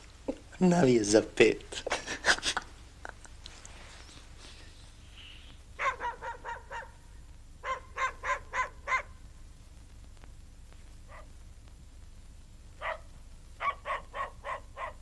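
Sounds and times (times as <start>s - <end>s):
animal calling: 5.1s - 7.0s.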